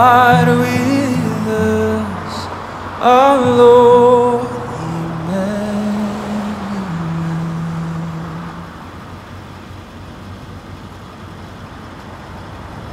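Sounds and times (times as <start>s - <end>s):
distant road traffic: 0.0s - 12.9s.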